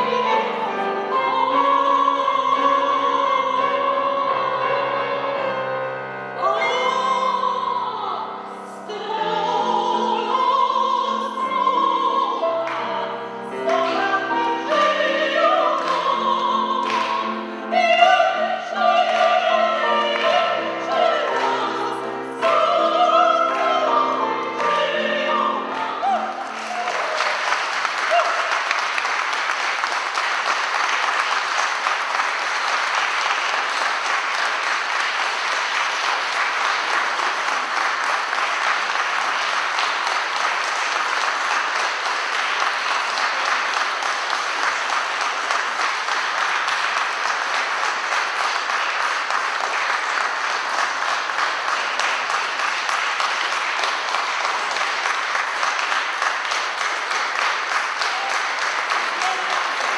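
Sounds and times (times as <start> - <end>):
audience applause: 18.8 - 59.9.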